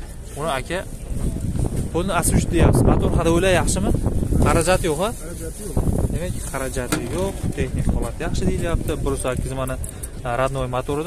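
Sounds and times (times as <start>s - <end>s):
wind rumble: 0.0s - 10.9s
people talking: 0.3s - 11.0s.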